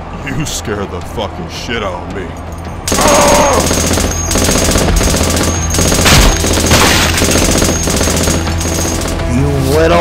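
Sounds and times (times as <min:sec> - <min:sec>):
automatic rifle fire: 0:02.9 - 0:09.1.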